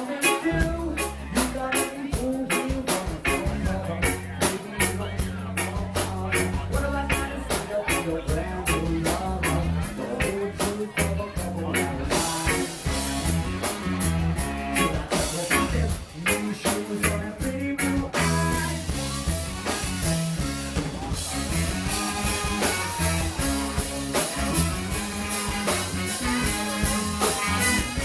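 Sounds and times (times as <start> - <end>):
bass: 0.0 - 28.0
electric guitar: 0.0 - 28.0
drum beat: 0.6 - 28.0
saxophone: 19.0 - 28.0.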